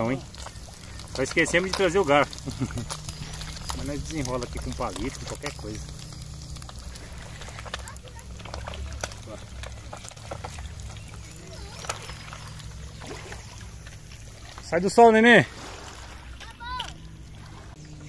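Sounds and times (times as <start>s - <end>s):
small crackles and pops: 0.0s - 14.8s
fish sizzling in oil: 0.0s - 15.0s.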